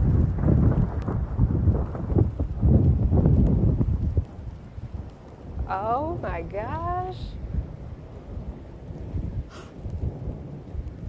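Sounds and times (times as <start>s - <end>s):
thunder rumbling: 0.0s - 11.0s.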